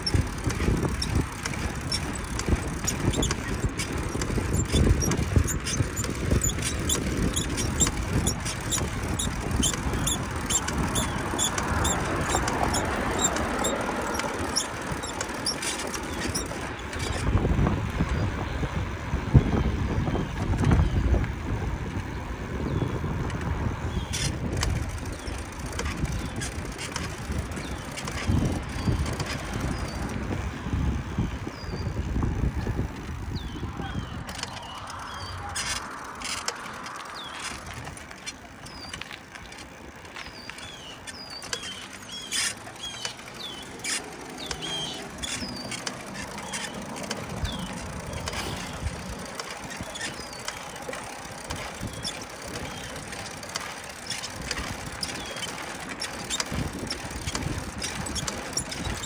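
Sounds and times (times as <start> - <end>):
wind on microphone: 0.0 - 15.1, 16.1 - 39.0, 56.0 - 59.0
short high squeaks: 0.0 - 17.4, 24.0 - 30.2, 33.3 - 50.9, 51.5 - 59.0
road rumble: 0.0 - 59.0
traffic passing: 0.0 - 59.0.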